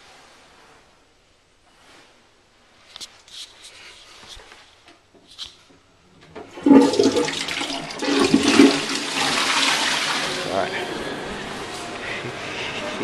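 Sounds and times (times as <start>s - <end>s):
toilet flushing: 6.3s - 10.8s.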